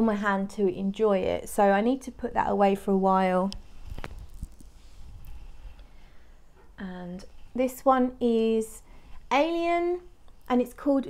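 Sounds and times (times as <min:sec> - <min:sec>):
faint rustling: 0:03.5 - 0:07.6.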